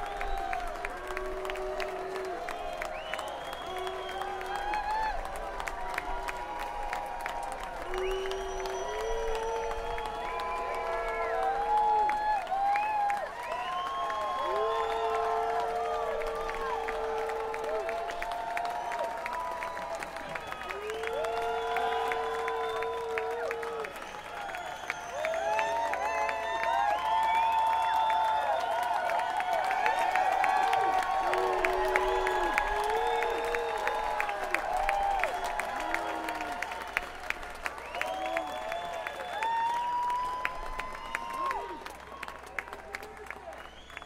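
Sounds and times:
audience applauding and cheering: 0:00.0 - 0:44.0
long whistle: 0:02.4 - 0:04.8, 0:07.8 - 0:11.4, 0:12.7 - 0:15.5, 0:18.9 - 0:28.9, 0:31.3 - 0:34.1, 0:43.6 - 0:44.0.

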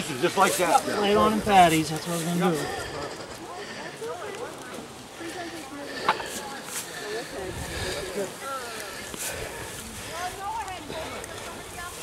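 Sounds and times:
distant people talking: 0:00.0 - 0:12.0.

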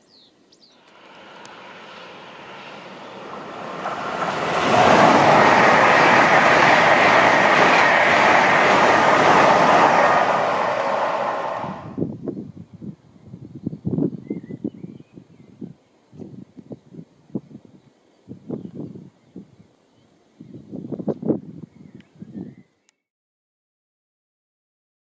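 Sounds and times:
high-speed train passing: 0:00.8 - 0:12.1.

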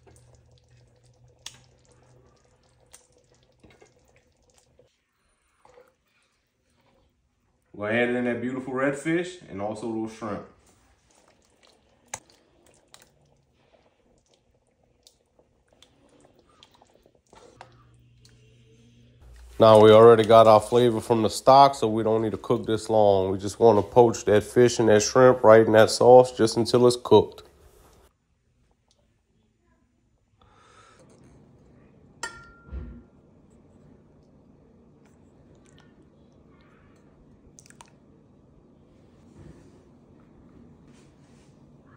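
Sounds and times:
faint room noise: 0:00.0 - 0:41.9
low steady hum: 0:00.0 - 0:41.9
utensil clinking on dish: 0:32.2 - 0:32.8.

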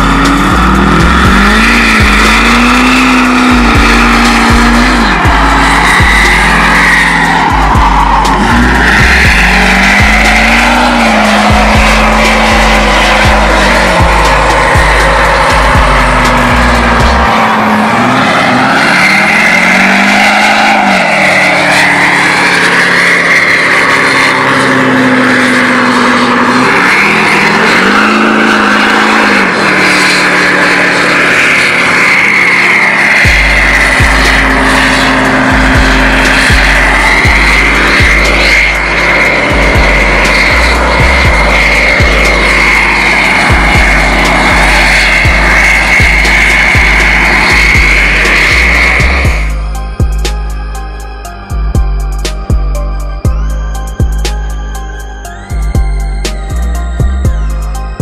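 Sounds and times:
music with heavy bass beat: 0:00.0 - 0:28.1, 0:31.8 - 0:58.0
truck engine revving: 0:00.0 - 0:58.0
tyres screeching: 0:00.0 - 0:58.0.

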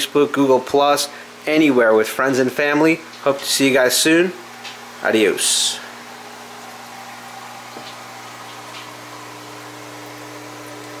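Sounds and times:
air pump humming and hissing: 0:00.0 - 0:11.0.

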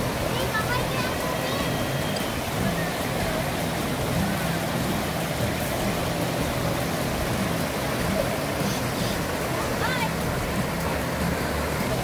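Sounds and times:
river rushing over rocks: 0:00.0 - 0:12.0.

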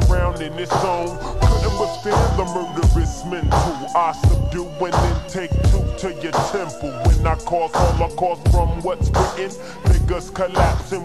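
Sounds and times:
heavy bass beat: 0:00.0 - 0:11.0
slowed-down rap vocal: 0:00.0 - 0:11.0.

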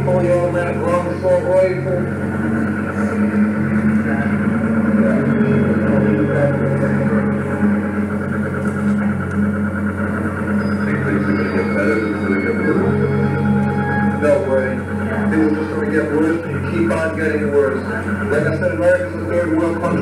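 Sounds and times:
band playing low drone: 0:00.0 - 0:20.0.

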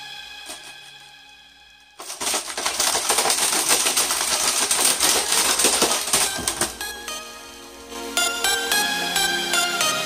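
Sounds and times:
music: 0:00.0 - 0:10.0
plastic casing crackling and breaking: 0:02.0 - 0:07.0.

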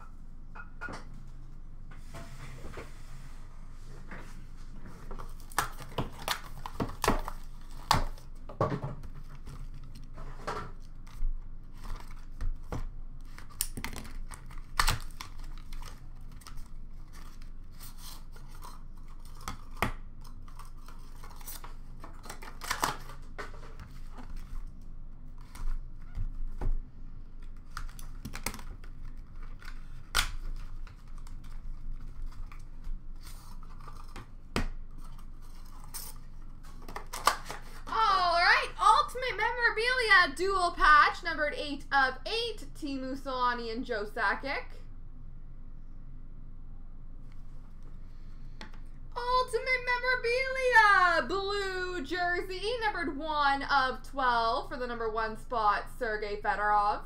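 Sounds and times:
cardboard and plastic tearing: 0:05.2 - 0:08.3, 0:09.0 - 0:24.7, 0:35.0 - 0:37.9.

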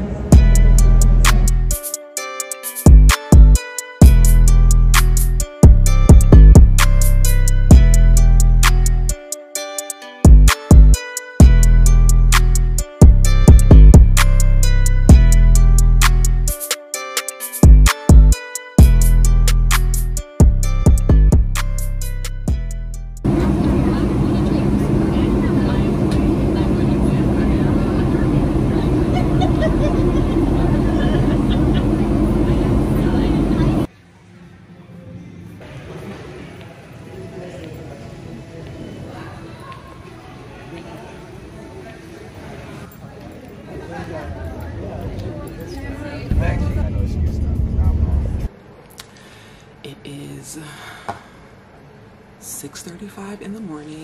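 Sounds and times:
steady low hum: 0:18.8 - 0:33.9, 0:46.3 - 0:54.0
airliner cabin engine rumble: 0:23.2 - 0:33.9, 0:45.2 - 0:48.5.

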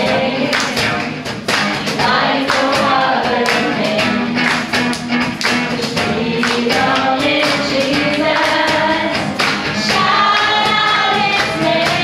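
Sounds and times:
worship team singing gospel song: 0:00.0 - 0:04.6, 0:05.7 - 0:12.0
guitar accompaniment: 0:00.0 - 0:12.0.

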